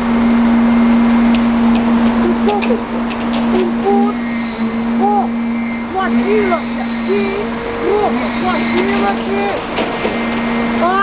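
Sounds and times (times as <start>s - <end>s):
low mechanical drone: 0.0s - 11.0s
woman's voice: 5.9s - 9.6s.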